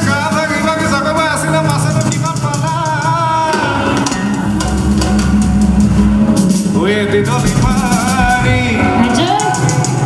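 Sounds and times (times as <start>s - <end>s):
drums and percussion: 0.0s - 10.0s.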